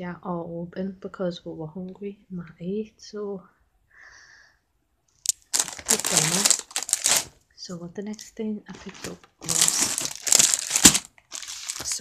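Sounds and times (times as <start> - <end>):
plastic bag crinkling: 5.3 - 7.4, 8.7 - 12.0.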